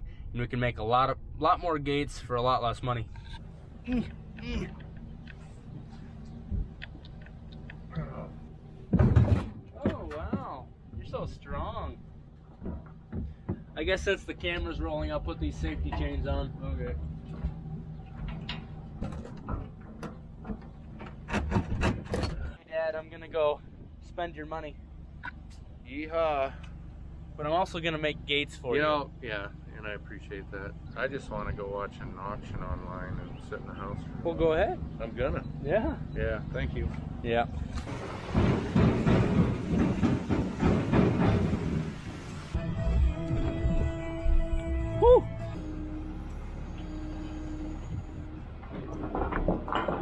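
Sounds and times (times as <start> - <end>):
steady low hum: 0.0 - 50.0
trailer rattling and clanking: 0.0 - 50.0
steel chains clinking: 18.9 - 19.5, 21.3 - 22.6.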